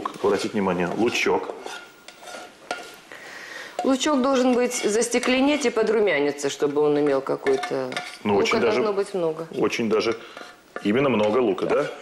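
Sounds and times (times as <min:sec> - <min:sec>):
utensil scraping frying pan: 0:00.0 - 0:12.0.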